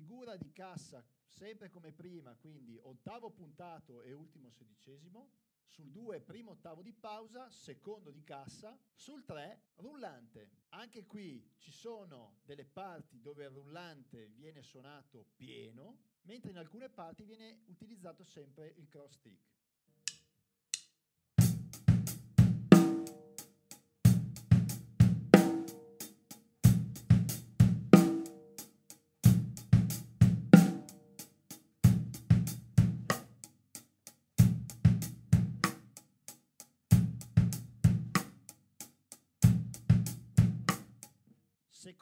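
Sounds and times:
drum kit playing rock groove: 21.4 - 33.5, 34.4 - 36.0, 36.9 - 41.1.

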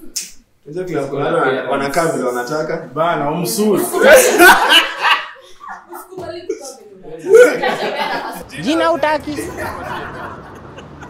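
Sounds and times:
man laughing: 7.3 - 11.0.

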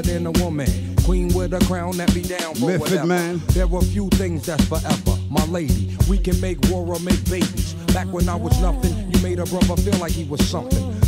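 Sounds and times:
deep bass line: 0.0 - 11.0
rapping over a beat: 0.0 - 11.0.

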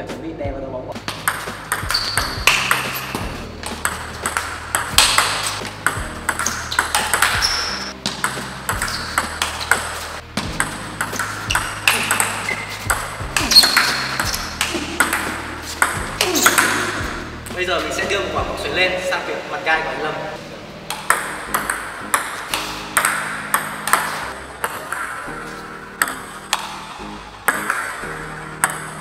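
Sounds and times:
table tennis ball clicks: 1.1 - 10.0, 10.6 - 16.8, 20.9 - 25.2.

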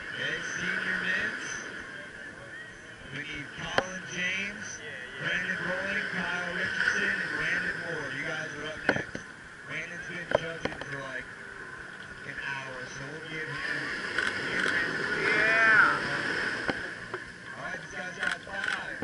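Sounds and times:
indistinct voices and chatter: 0.0 - 19.0
camera shutter clicks: 18.2 - 18.9.

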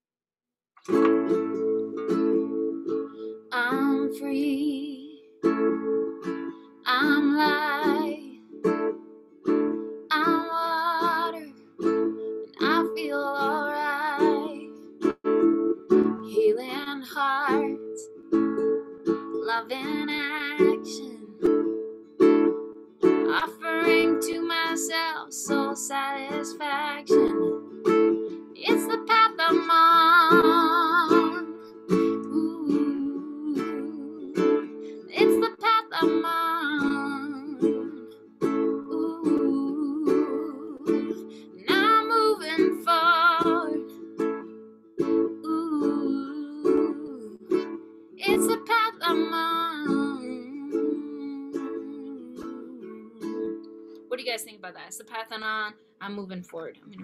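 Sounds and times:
strummed acoustic string instrument: 0.8 - 57.0
woman singing: 3.5 - 5.3, 6.8 - 8.5, 10.1 - 11.6, 12.6 - 14.8, 16.2 - 18.1, 19.4 - 21.5, 23.2 - 27.7, 28.5 - 44.0, 45.3 - 57.0.

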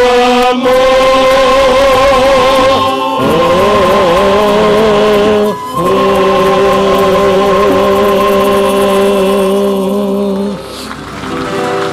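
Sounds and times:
male choir singing: 0.0 - 10.7
guitars: 0.0 - 11.9.

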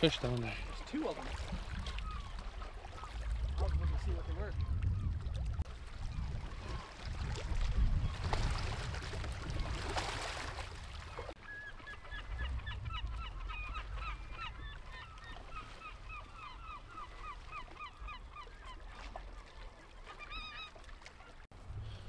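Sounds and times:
gulls calling: 0.0 - 7.1, 10.8 - 21.5.

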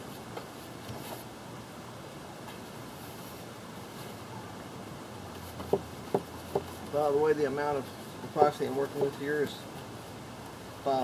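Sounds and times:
stick tapping against tray: 5.6 - 6.7, 8.3 - 9.2.

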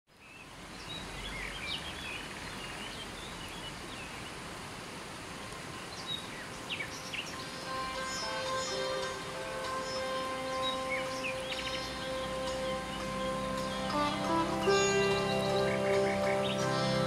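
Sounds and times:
small birds chirping: 0.1 - 4.4, 5.3 - 17.0
river flowing over rocks: 0.4 - 17.0
soft instrumental music: 7.1 - 17.0.

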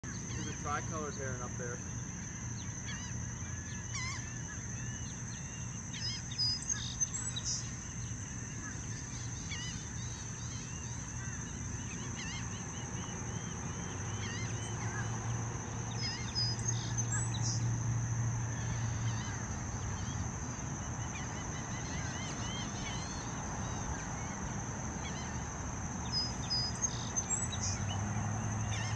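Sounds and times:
steady high whine: 0.0 - 27.8.

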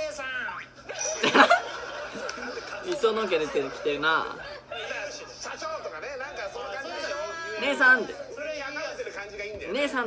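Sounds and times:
man laughing: 0.9 - 2.6.

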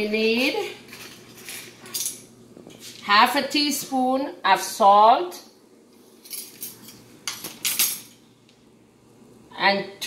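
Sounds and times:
metal spoons clinking and scraping: 0.8 - 2.9, 6.2 - 8.2.

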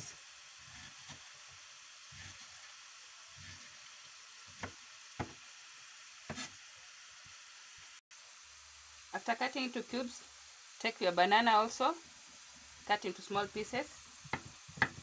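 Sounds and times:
faint steady hiss: 0.0 - 15.0
knife tapping wooden board: 4.5 - 5.4, 14.3 - 15.0.

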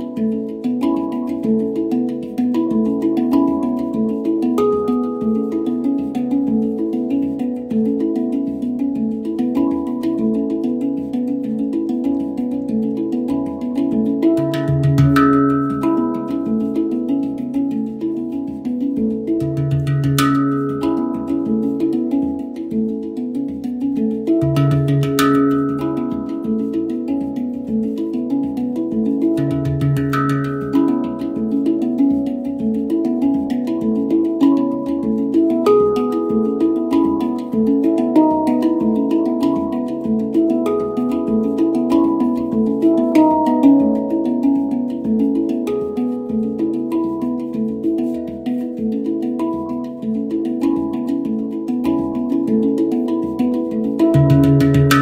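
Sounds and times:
handpan ringing notes: 0.0 - 55.0.

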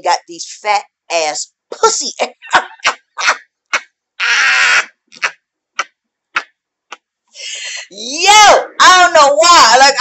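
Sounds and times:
woman speaking: 0.0 - 3.4, 7.4 - 10.0
woman laughing: 2.2 - 3.4, 4.2 - 5.3, 7.4 - 8.0.

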